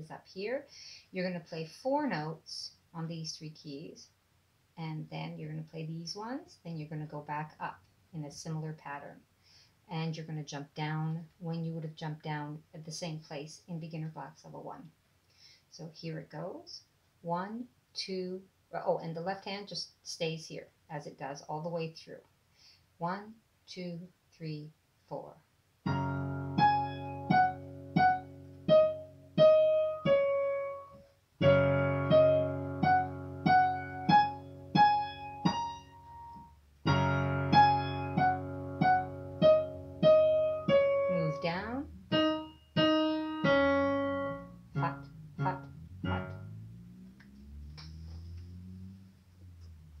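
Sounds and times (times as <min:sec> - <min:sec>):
digital piano playing: 0:25.9 - 0:46.8.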